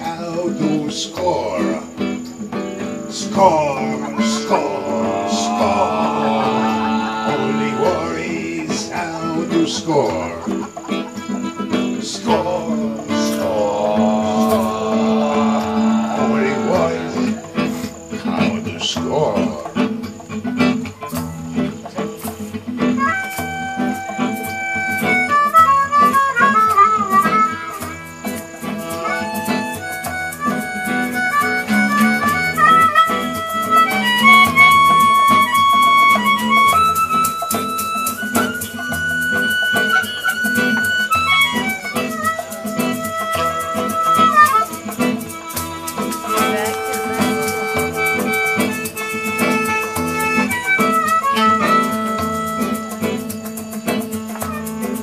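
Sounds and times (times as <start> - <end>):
guitar: 0.0 - 55.0
djembe beat: 2.4 - 9.2, 9.9 - 20.4, 21.1 - 55.0
harmonica solo: 2.9 - 9.5, 10.5 - 18.1, 22.8 - 55.0.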